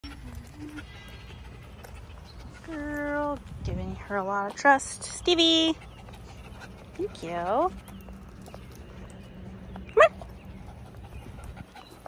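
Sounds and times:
wind rumble: 0:01.3 - 0:04.6.

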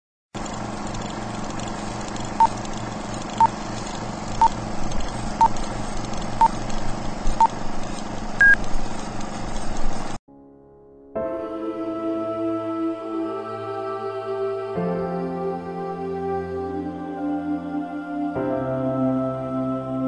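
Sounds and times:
crackly projector hum: 0:00.4 - 0:10.2.

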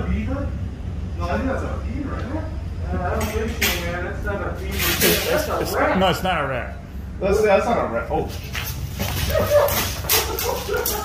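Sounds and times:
men laughing: 0:05.3 - 0:06.6, 0:09.0 - 0:11.0
men yelping: 0:05.3 - 0:06.7, 0:09.2 - 0:11.0.

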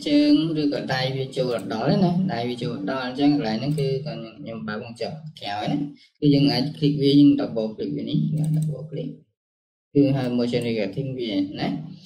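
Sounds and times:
man talking: 0:00.0 - 0:09.2, 0:10.0 - 0:12.0
sharp computer clicks: 0:03.6 - 0:04.1, 0:08.2 - 0:09.0.

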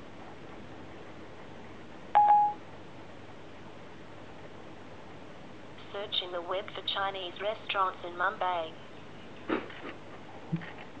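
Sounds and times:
short electronic beep: 0:02.2 - 0:02.6.

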